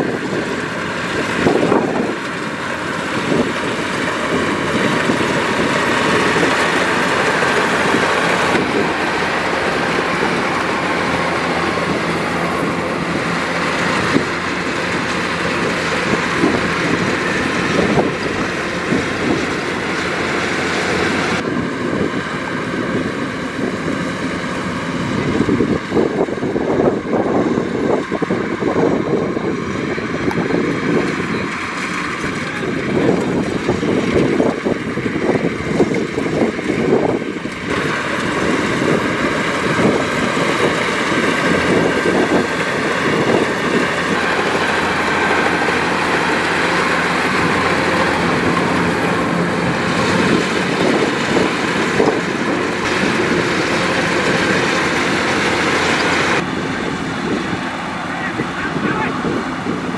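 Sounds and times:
combine harvester mechanical drone: 0.0s - 59.9s.

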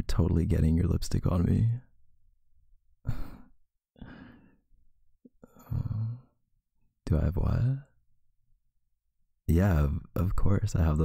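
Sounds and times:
man laughing softly: 3.0s - 4.2s
man sighing: 5.4s - 6.4s.

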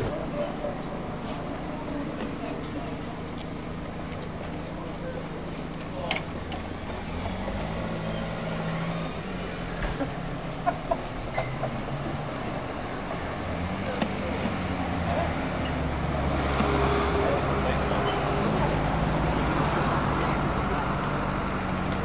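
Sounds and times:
cars on the road: 0.0s - 22.0s
indistinct voices: 10.8s - 22.0s.

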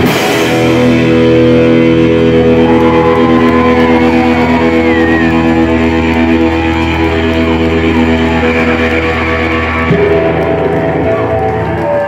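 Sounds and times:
electric guitars and bass droning: 0.0s - 12.0s.

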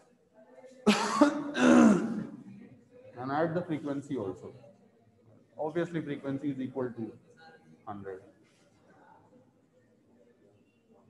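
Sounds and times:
man clearing his throat: 0.9s - 2.5s.

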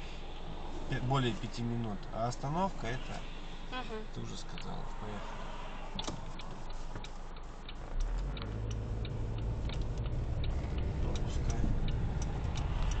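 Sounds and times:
engine and road rumble: 0.0s - 13.0s
turn signal ticking: 0.2s - 13.0s.

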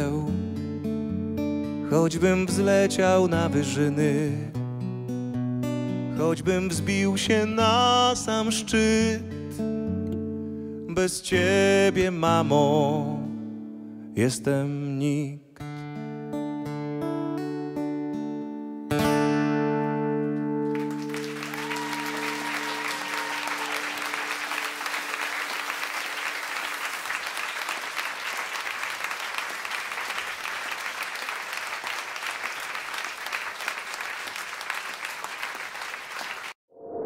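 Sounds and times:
audience applause: 20.7s - 36.6s.

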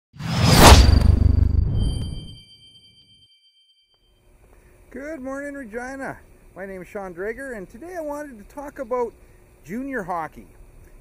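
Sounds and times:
deep rumble: 0.2s - 2.4s
whoosh: 0.2s - 2.5s
high ringing shimmer: 0.7s - 4.2s.

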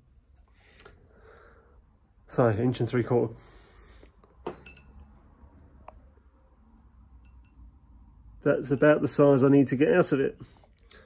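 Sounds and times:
steel bar clinking: 4.5s - 5.2s.

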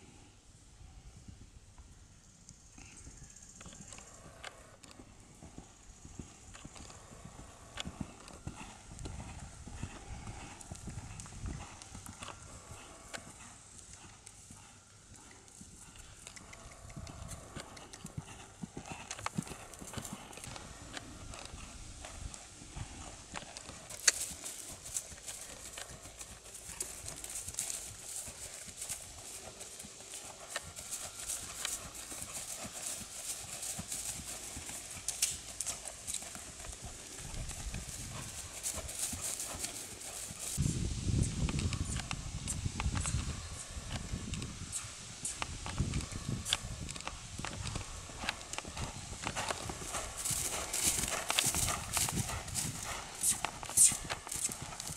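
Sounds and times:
horse hooves trotting: 0.9s - 54.9s.

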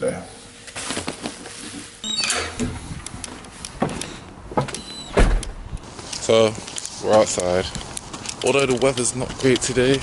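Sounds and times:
high squeak: 2.0s - 2.6s
camera handling noise: 5.8s - 10.0s.

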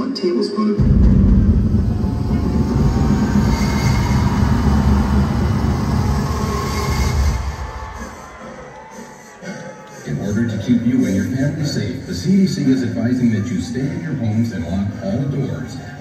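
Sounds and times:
crowd noise: 0.0s - 16.0s
deep bass rumble: 0.8s - 8.0s.

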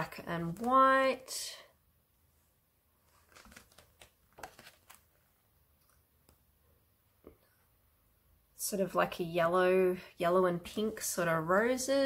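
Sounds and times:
paper sheet rustling: 3.0s - 5.4s.

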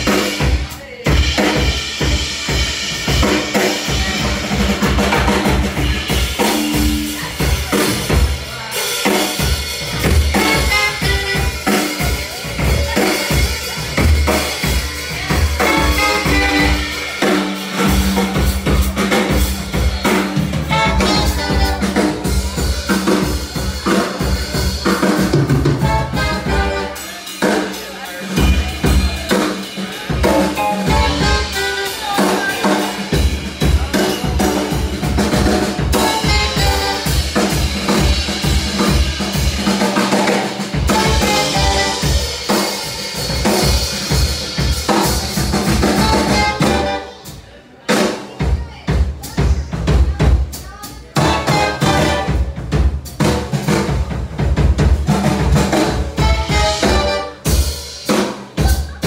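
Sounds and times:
drums playing: 0.0s - 59.0s
live band playing: 0.0s - 59.0s.

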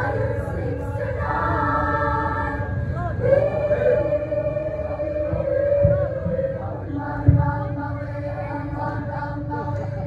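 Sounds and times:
mixed choir singing chords: 0.0s - 10.0s.

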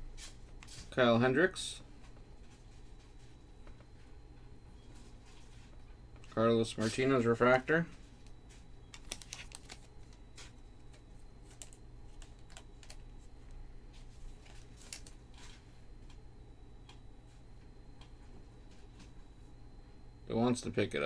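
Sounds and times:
cards being flipped: 8.9s - 13.0s, 14.4s - 15.6s.

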